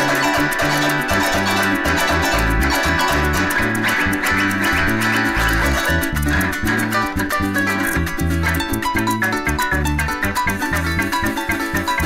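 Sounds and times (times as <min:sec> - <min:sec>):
cuatro strumming: 0:00.0 - 0:12.0
harp playing fast melody: 0:00.0 - 0:12.0
maracas shaking: 0:00.0 - 0:12.0.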